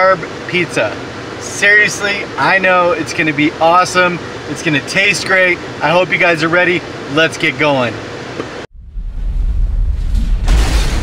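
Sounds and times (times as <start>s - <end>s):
faint car cabin hum: 0.0s - 8.6s
deep rumbling whoosh: 8.7s - 11.0s.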